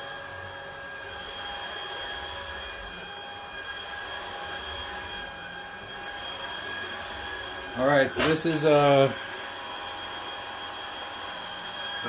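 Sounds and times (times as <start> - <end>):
high motor whines: 0.0 - 12.0
vacuum cleaner running on carpet: 0.0 - 12.0.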